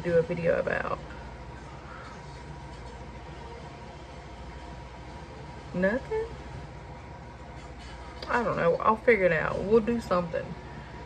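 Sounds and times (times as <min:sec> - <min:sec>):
faint constant hum: 0:00.0 - 0:11.0.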